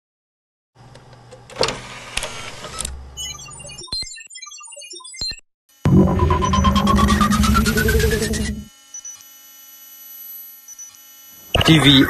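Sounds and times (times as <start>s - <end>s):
mechanical sliding whir: 1.6s - 3.4s, 6.0s - 11.6s
low rumble: 5.9s - 8.7s
twinkling electronic blips: 5.9s - 9.2s.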